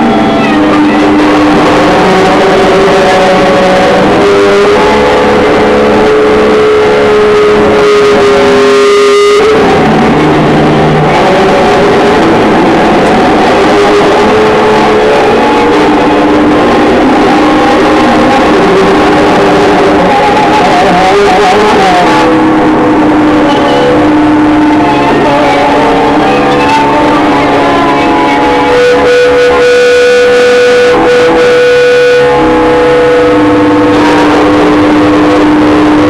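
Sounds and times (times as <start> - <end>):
distorted droning noise music: 0.0 - 36.0.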